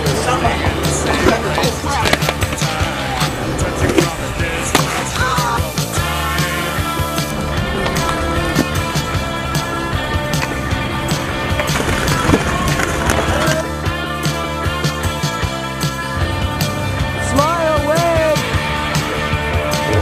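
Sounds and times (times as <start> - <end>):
music track: 0.0 - 20.0
skateboard clacks: 0.0 - 20.0
skateboard wheels rolling on pavement: 0.0 - 20.0.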